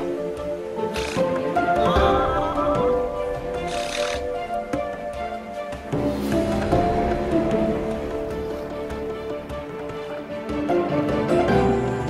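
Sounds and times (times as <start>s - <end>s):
orchestral music sustained chords: 0.0s - 12.0s.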